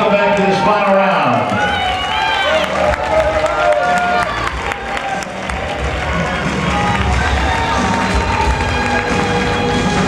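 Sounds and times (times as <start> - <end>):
spectators shouting: 1.5 - 10.0.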